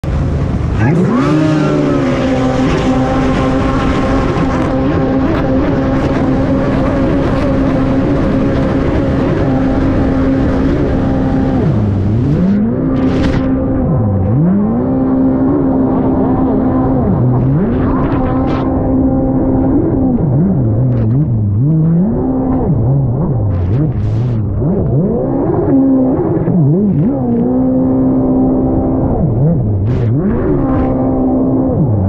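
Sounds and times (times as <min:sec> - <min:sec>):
jet ski engine at high revs: 0:00.0 - 0:32.0.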